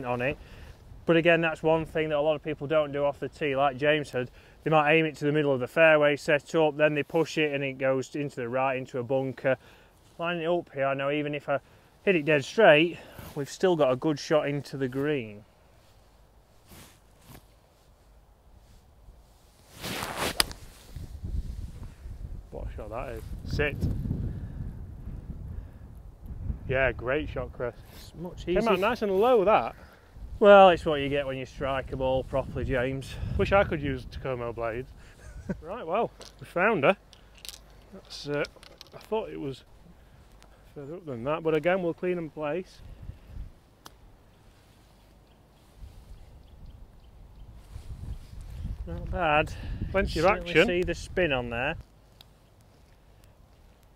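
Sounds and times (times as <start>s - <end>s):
golf club swing swish: 19.5s - 21.6s.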